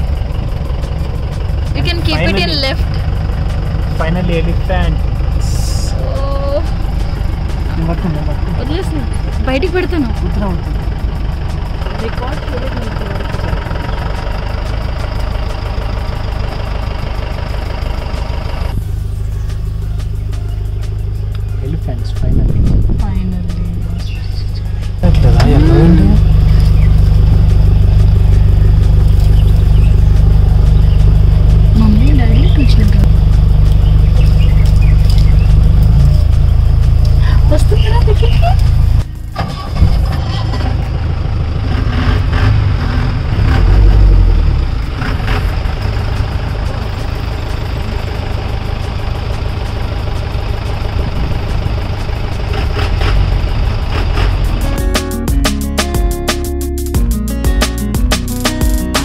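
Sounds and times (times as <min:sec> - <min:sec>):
vehicle engine rumbling: 0:00.0 - 0:59.0
people's voices: 0:01.7 - 0:03.0, 0:03.9 - 0:06.8, 0:07.6 - 0:11.0, 0:11.7 - 0:14.0, 0:21.6 - 0:26.5, 0:31.7 - 0:33.1, 0:37.1 - 0:38.7.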